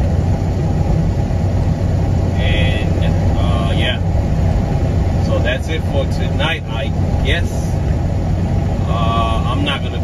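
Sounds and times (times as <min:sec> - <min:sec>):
truck engine and tyres droning: 0:00.0 - 0:10.0.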